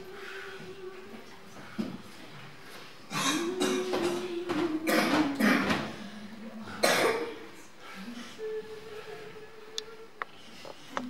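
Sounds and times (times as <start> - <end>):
person coughing: 6.8 - 7.4.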